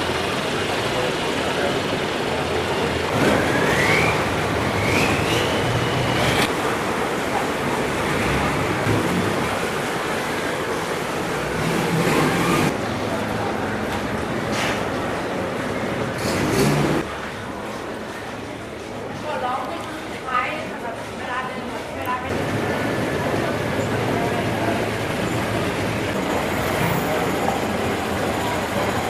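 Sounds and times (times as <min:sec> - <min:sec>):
engine whine: 0:00.0 - 0:17.4, 0:22.3 - 0:29.0
street traffic noise: 0:00.0 - 0:29.0.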